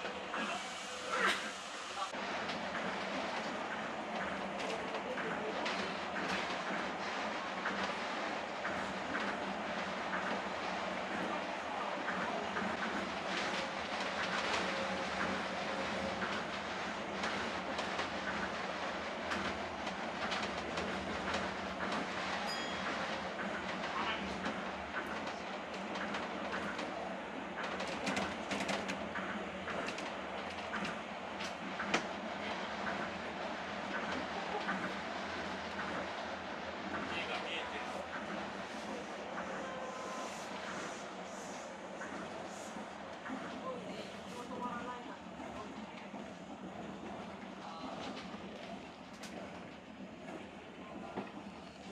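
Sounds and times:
train running rumble and hiss: 0.0s - 51.9s.

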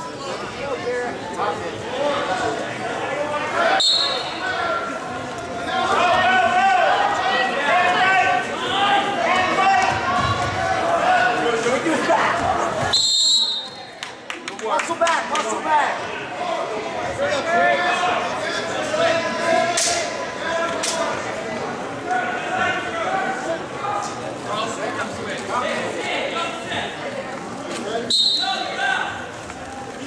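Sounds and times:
spectators chattering in echoing gym: 0.0s - 30.0s
referee's whistle: 3.8s - 4.4s, 12.9s - 13.9s, 28.1s - 28.8s.

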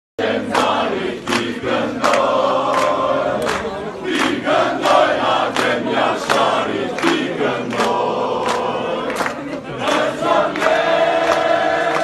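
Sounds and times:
crowd singing in unison: 0.2s - 12.0s
rhythmic clap-like accents: 0.2s - 12.0s.

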